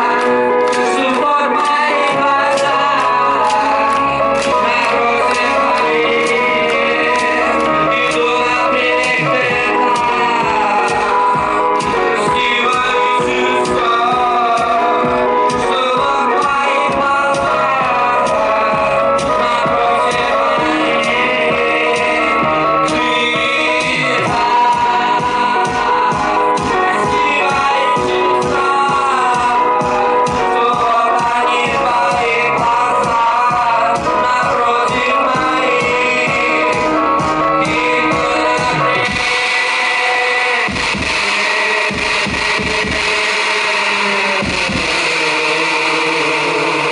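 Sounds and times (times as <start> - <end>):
drum beat: 0.0 - 46.9
live band music: 0.0 - 46.9
loud distorted noise: 0.0 - 46.9
man singing into a microphone: 0.0 - 46.9
low drum thumps: 40.7 - 43.2, 44.4 - 45.2.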